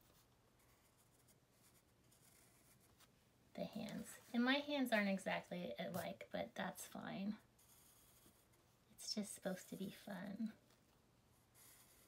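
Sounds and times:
pencil scratching on paper: 0:00.0 - 0:03.1, 0:07.6 - 0:08.8, 0:11.3 - 0:12.0.

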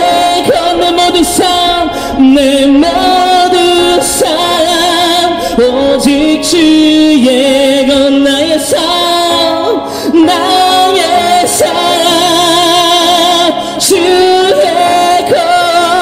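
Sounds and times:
man singing worship song amplified: 0:00.0 - 0:16.0.

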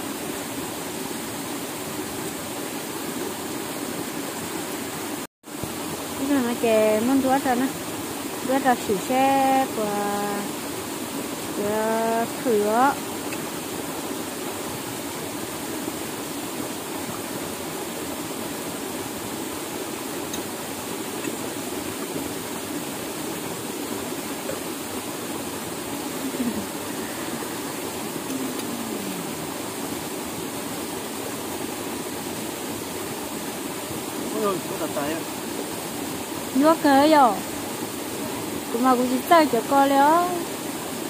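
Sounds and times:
rushing stream water: 0:00.0 - 0:41.0.

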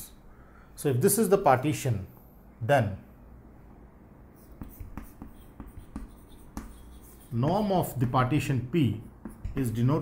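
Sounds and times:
chalk writing on chalkboard: 0:04.3 - 0:09.9.

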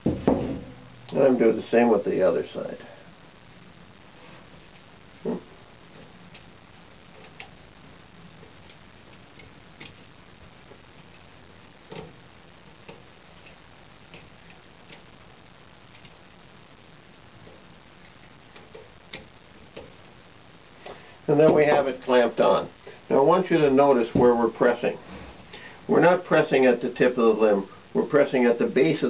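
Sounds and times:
knock on metal frame: 0:00.0 - 0:00.8.

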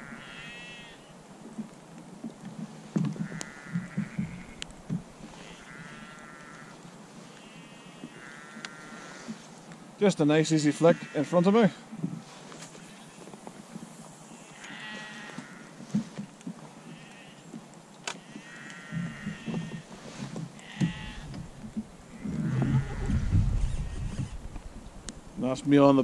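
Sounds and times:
low rumble: 0:21.0 - 0:25.4.

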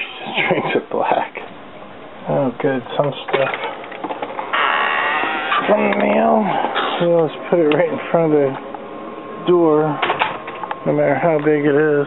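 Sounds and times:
sliding screen door rolling open: 0:03.4 - 0:06.0.

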